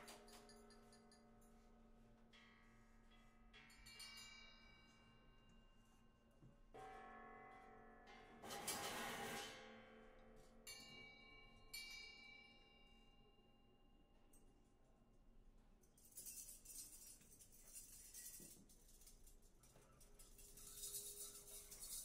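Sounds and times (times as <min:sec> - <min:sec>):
bell-like struck metal tones: 0:06.7 - 0:08.6.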